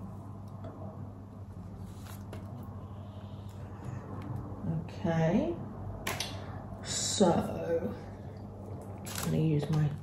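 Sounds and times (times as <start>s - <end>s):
faint brush sounds: 1.5s - 3.8s.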